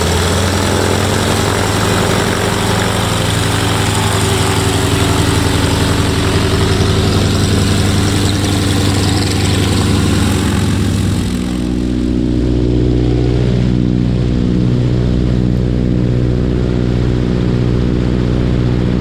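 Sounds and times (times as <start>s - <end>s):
propeller engine idling: 0.0s - 19.0s.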